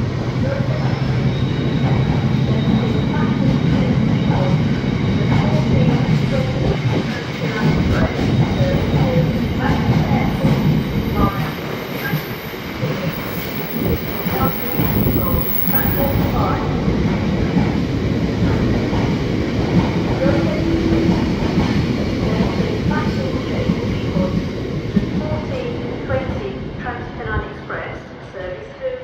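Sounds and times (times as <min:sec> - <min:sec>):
freight train wheels rumbling: 0:00.0 - 0:28.8.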